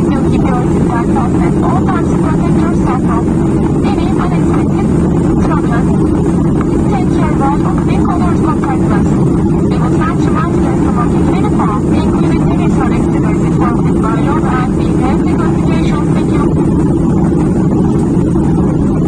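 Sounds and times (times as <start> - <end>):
indistinct voices talking: 0.0 - 16.8
jet engine drone inside cabin: 0.0 - 19.0.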